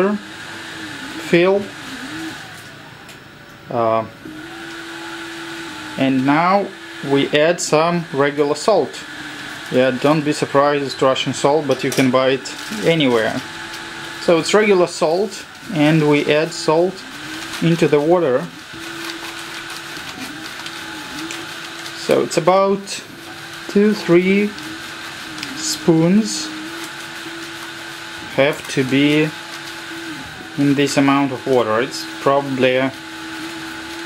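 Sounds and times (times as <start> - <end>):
laser engraver hissing and humming: 0.0 - 34.0.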